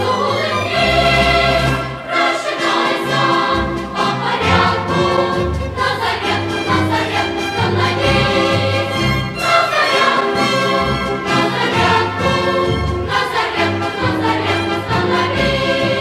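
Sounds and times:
choir singing held notes: 0.0 - 16.0.

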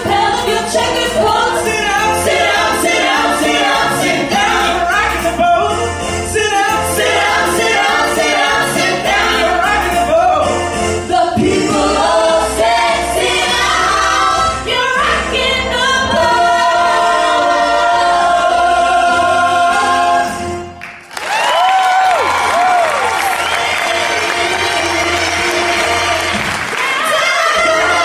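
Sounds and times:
vocal group singing in harmony: 0.0 - 20.8, 22.6 - 28.0.

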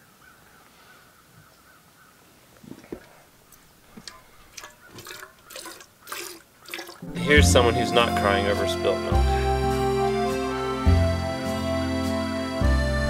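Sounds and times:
milk squirting into metal pail: 2.7 - 7.1.

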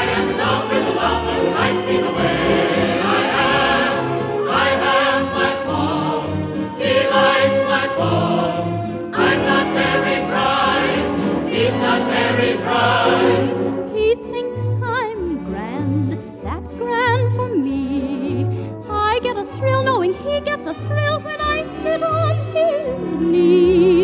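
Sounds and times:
orchestral show tune music: 0.0 - 24.0.

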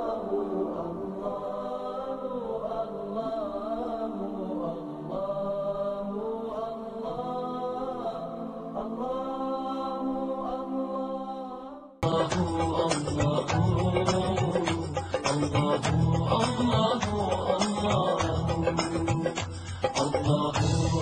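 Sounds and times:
unaccompanied vocal chant: 0.0 - 21.0.

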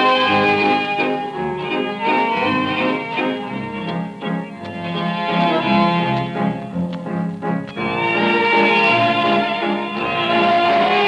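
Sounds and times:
tango orchestra playing a waltz: 0.0 - 11.0.

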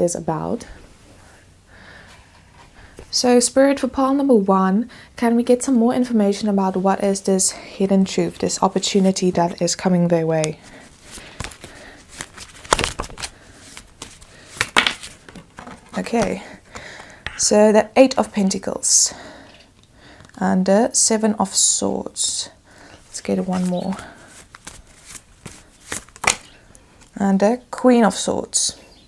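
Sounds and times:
cards being shuffled: 10.4 - 17.5, 23.2 - 27.2
card laid on table: 17.2 - 17.5.

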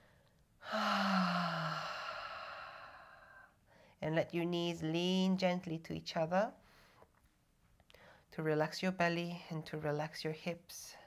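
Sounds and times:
woman sighing: 0.6 - 3.4.

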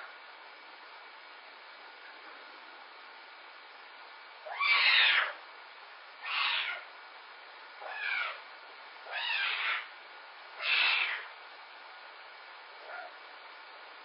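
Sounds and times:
young pet crying: 4.4 - 5.4, 6.2 - 6.9, 7.8 - 8.4, 9.1 - 9.9, 10.6 - 11.3, 12.8 - 13.2.

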